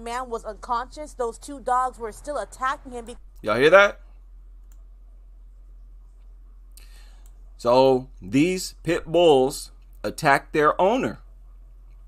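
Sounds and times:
low electrical hum: 0.0 - 12.0
computer mouse click: 4.6 - 4.9.

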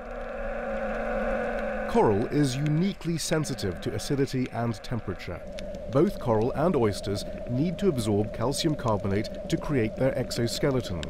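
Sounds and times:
droning hum of held tones: 0.0 - 11.0
low rumble: 0.0 - 11.0.

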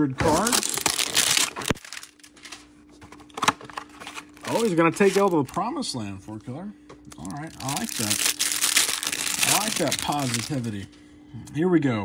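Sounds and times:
paperboard tearing: 0.2 - 2.1.

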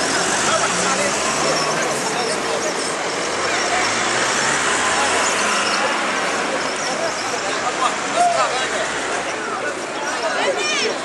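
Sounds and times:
road traffic rush: 0.0 - 11.0.

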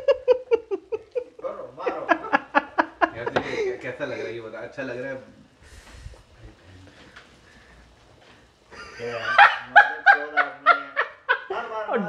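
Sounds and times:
person laughing nervously: 0.0 - 3.7.

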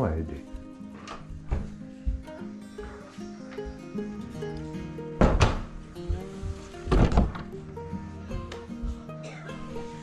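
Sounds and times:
background music: 0.0 - 10.0
wooden door thumps: 1.4 - 1.8, 5.2 - 6.2, 6.9 - 7.5.

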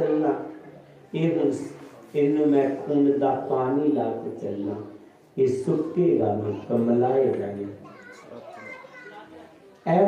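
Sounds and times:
man speaking into a microphone: 0.0 - 7.8
children chattering: 0.0 - 10.0.

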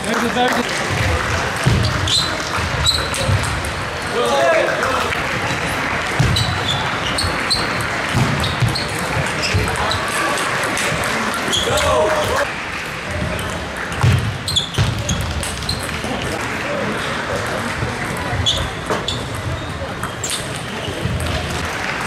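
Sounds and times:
voices echoing: 0.0 - 22.0.

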